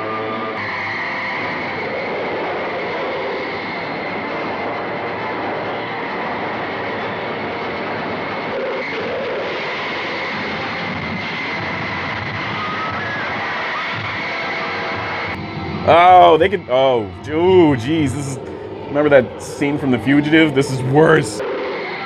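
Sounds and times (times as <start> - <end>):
shrill high tone: 15.9 - 21.4.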